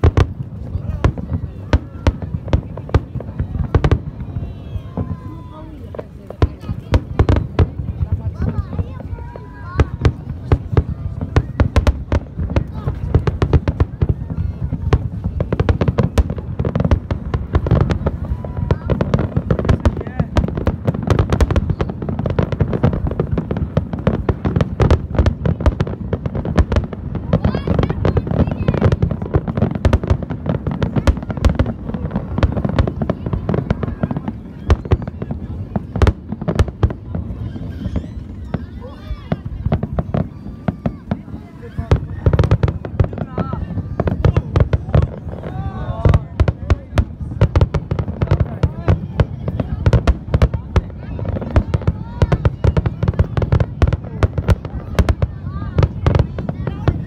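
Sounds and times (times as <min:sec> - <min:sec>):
continuous low rumble: 0:00.0 - 0:57.0
fireworks bangs and crackles: 0:00.0 - 0:57.0.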